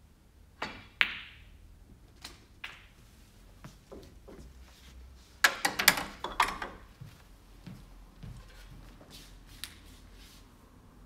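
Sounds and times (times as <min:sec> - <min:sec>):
sharp click of snooker balls: 0:00.6 - 0:01.5, 0:02.2 - 0:03.0.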